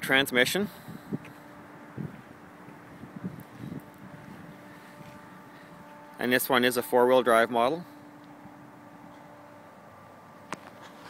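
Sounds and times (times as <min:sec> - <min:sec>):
faint steady hum: 0:00.1 - 0:11.0
wind on microphone: 0:00.7 - 0:05.3.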